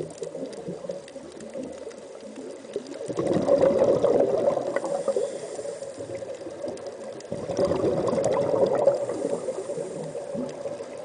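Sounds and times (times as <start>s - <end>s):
underwater bubbling: 0.0s - 11.0s.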